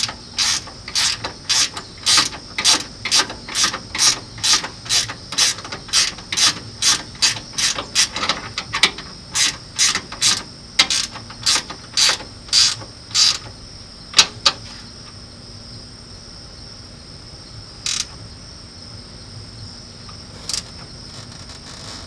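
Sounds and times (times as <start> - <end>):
socket ratchet clicking: 0.0 - 13.5, 17.9 - 18.1.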